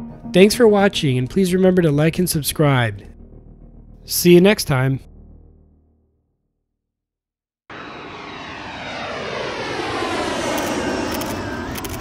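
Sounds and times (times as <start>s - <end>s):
aircraft flying past: 7.7s - 12.0s.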